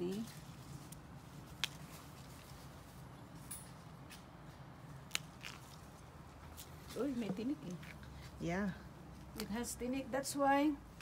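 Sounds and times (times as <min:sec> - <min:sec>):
rustling leaves and branches: 0:00.0 - 0:11.0.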